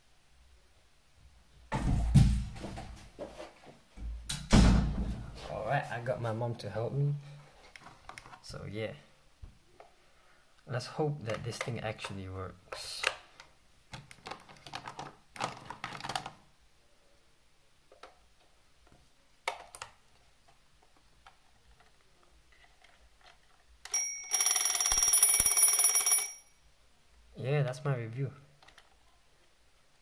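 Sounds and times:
plastic clicks and handling: 0:07.7 - 0:08.4, 0:11.2 - 0:16.4, 0:28.6 - 0:29.0
alarm clock bells ringing: 0:23.9 - 0:26.6.

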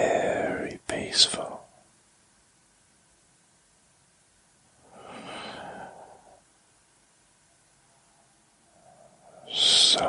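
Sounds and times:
man whispering: 0:00.0 - 0:01.9, 0:04.8 - 0:06.4, 0:08.7 - 0:10.0.

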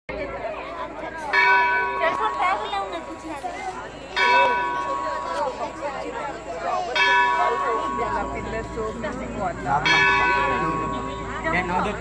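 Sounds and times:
people chattering: 0:00.1 - 0:12.0.

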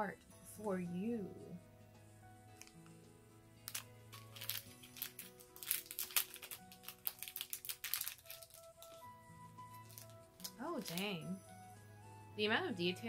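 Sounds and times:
quiet background music: 0:00.0 - 0:13.0
plastic packet crinkling: 0:03.6 - 0:11.3.

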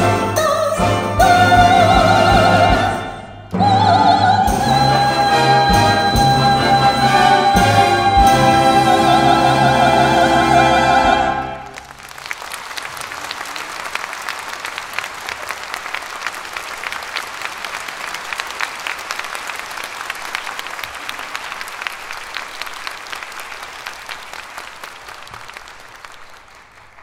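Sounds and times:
audience applauding: 0:06.6 - 0:27.0.

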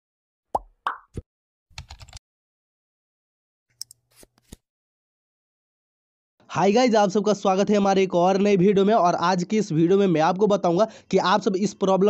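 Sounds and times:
keyboard typing clicks: 0:01.8 - 0:02.2.

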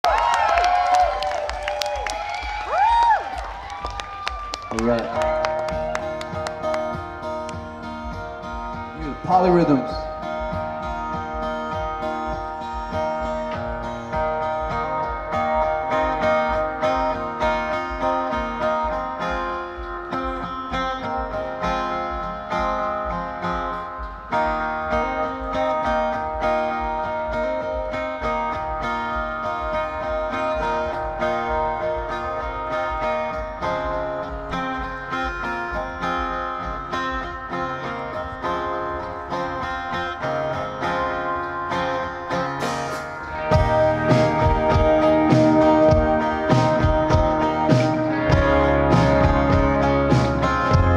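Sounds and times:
rock band playing live: 0:00.2 - 0:50.9
acoustic guitar strumming: 0:04.7 - 0:50.9.

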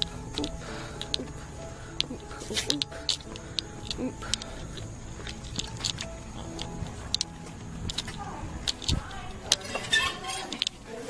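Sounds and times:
low rumble: 0:00.0 - 0:09.7.

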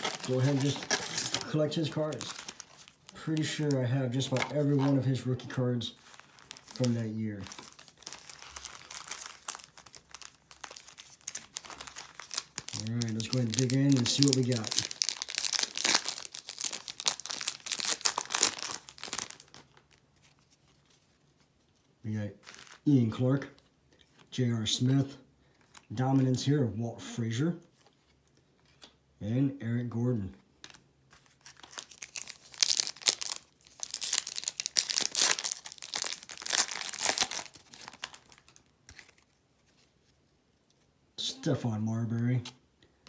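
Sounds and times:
foil wrapper tearing and crinkling: 0:00.0 - 0:03.7, 0:06.0 - 0:20.0, 0:31.2 - 0:39.2.

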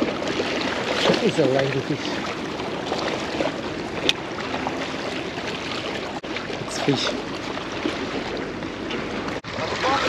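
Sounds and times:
waves lapping against rocks: 0:00.0 - 0:10.0.

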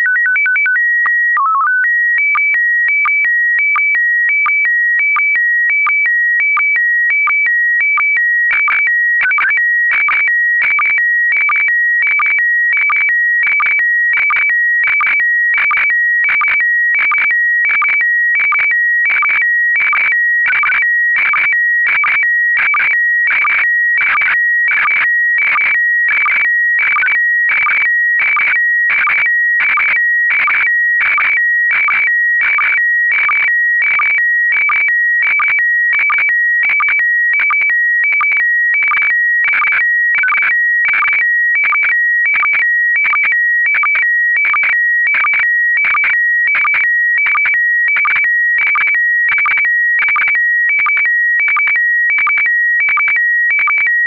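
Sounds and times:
high beeping tones with chirps: 0:10.7 - 0:41.2, 0:48.0 - 0:50.3.

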